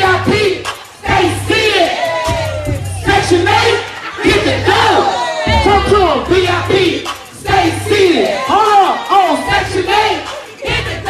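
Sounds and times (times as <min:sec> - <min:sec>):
bass-heavy music over speakers: 0:00.0 - 0:11.0
crowd shouting and singing along: 0:00.0 - 0:11.0.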